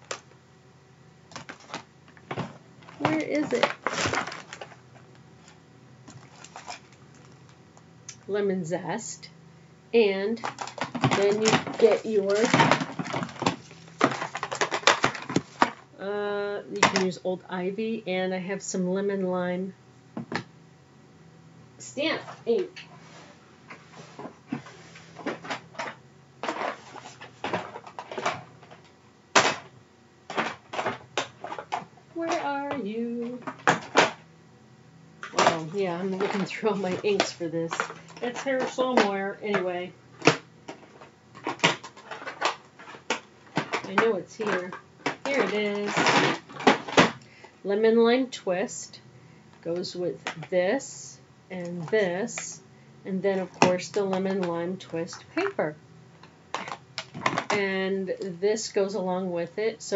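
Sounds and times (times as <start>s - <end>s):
craft supplies clicking and rustling: 1.3s - 8.2s, 10.4s - 15.8s, 23.7s - 29.7s, 30.3s - 34.2s, 35.2s - 47.5s, 53.3s - 57.6s.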